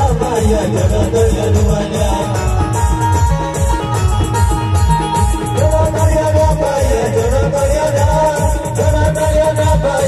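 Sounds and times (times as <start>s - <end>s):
fast heavy drum beat: 0.0s - 10.0s
wavering lead melody: 0.1s - 7.5s.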